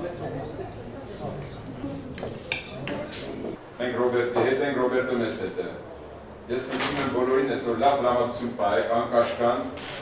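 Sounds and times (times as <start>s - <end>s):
murmur of conversation: 0.0s - 9.7s
cutlery and plates clinking: 2.2s - 3.5s.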